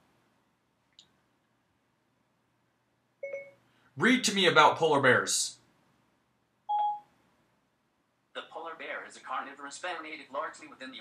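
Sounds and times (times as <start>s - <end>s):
short electronic beep: 3.2s - 3.6s.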